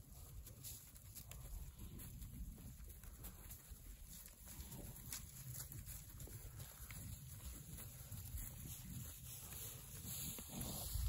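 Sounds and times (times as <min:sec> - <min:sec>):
cattle hoofsteps on dry grass: 0:00.0 - 0:11.0
grass rustling: 0:00.0 - 0:11.0.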